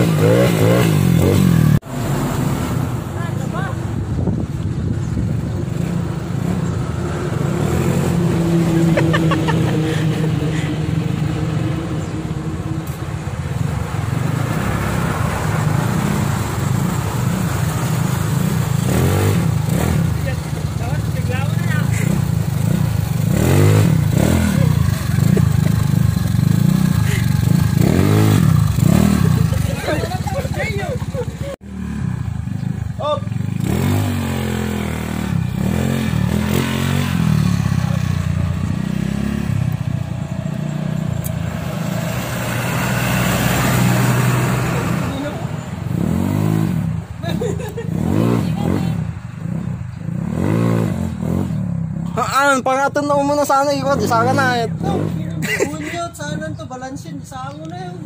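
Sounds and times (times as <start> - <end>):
motor scooter engine revving: 0.0 - 3.7, 14.0 - 52.2.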